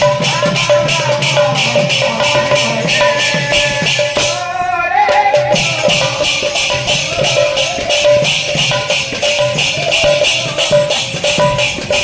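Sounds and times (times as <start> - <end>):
drum: 0.0 - 12.0
jingling hand percussion: 0.0 - 12.0.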